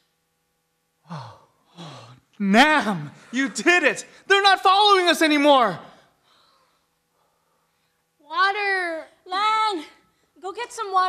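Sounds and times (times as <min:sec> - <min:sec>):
person sighing: 0:01.0 - 0:02.3.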